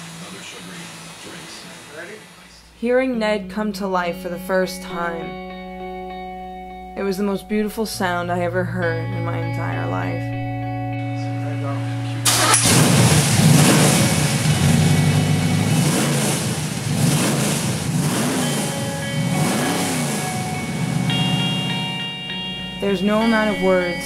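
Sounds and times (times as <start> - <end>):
car engine starting and revving: 0.0 - 2.6, 11.3 - 23.9.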